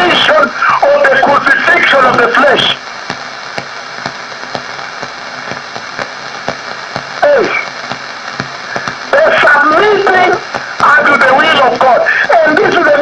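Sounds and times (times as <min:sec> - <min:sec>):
man preaching: 0:00.0 - 0:02.8, 0:07.2 - 0:07.7, 0:09.1 - 0:13.0
radio static hiss: 0:00.0 - 0:13.0.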